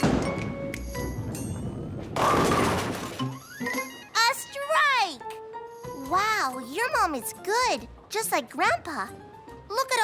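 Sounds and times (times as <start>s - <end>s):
bowling pins crashing: 1.6s - 3.3s
light background music: 2.9s - 10.0s.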